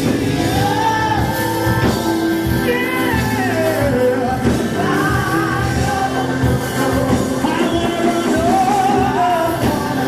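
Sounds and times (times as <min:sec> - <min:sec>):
person singing: 0:00.0 - 0:10.0
steady drumbeat: 0:00.0 - 0:10.0.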